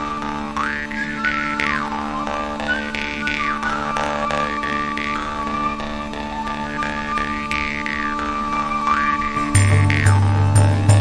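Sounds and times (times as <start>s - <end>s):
jaw harp melody over drone: 0.0s - 11.0s.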